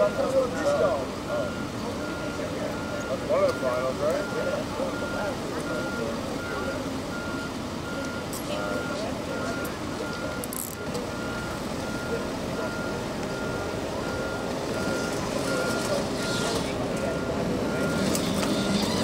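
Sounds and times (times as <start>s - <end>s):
engines running: 0.0s - 19.0s
murmur of voices: 0.0s - 19.0s
reversing alarm beeping: 0.0s - 19.0s.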